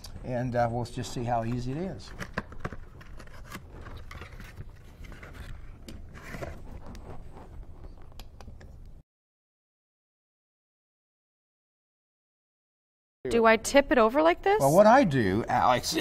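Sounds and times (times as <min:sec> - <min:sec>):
cardboard carton scraping and rustling: 0:03.1 - 0:07.6.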